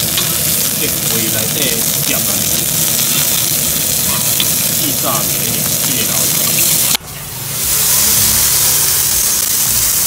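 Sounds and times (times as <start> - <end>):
meat sizzling on griddle: 0.0 - 10.0.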